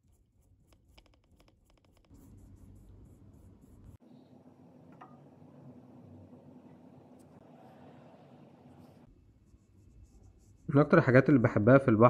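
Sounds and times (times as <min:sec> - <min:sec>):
paintbrush scratching on palette: 0:00.0 - 0:04.0, 0:07.1 - 0:11.0.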